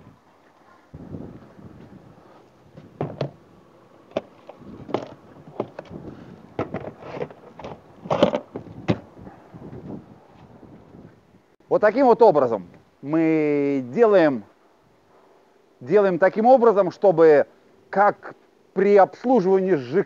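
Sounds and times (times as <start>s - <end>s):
plastic tank knocking and scraping: 3.0s - 3.4s, 4.1s - 6.0s, 6.6s - 9.1s.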